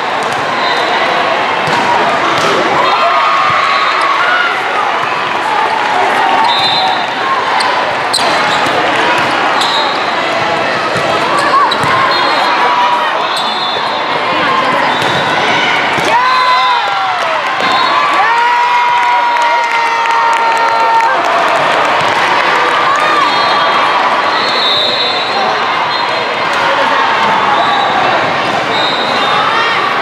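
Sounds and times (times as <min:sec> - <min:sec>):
players and spectators voices: 0:00.0 - 0:30.0
volleyball being struck: 0:01.6 - 0:02.8
sneakers squeaking on court: 0:10.9 - 0:12.6.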